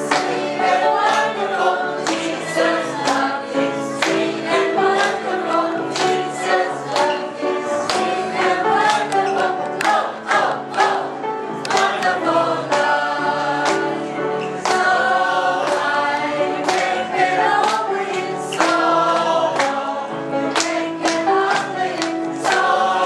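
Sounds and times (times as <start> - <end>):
group singing gospel song: 0.0 - 23.0.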